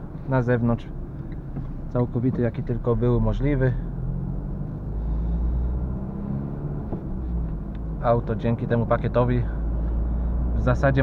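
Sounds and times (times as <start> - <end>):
car engine drone: 0.0 - 11.0
road rumble: 0.0 - 11.0.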